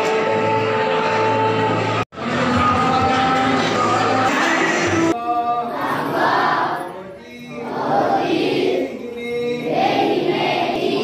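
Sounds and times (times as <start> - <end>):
group chanting a prayer in unison: 4.5 - 11.0.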